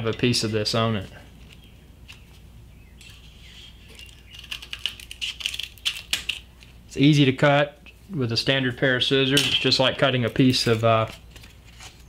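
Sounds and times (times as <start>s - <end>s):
scissors cutting gritty tape: 3.9s - 6.5s.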